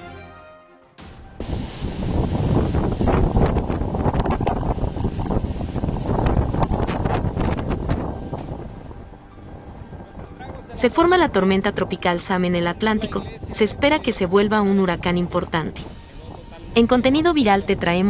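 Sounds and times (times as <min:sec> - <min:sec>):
wind gusting across microphone: 0:01.2 - 0:18.0.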